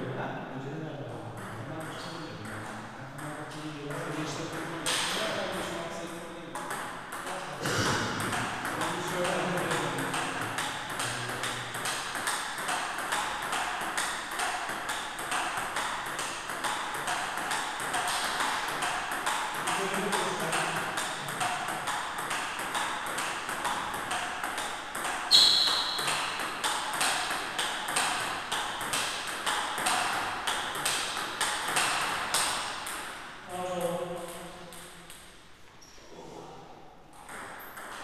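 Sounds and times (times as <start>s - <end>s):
table tennis ball clicking: 8.2s - 33.0s.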